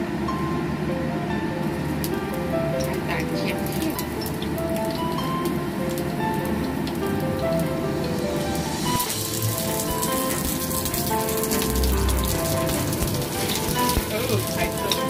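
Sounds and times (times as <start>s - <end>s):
background music: 0.0s - 15.0s
oil sizzling in a frying pan: 1.7s - 15.0s.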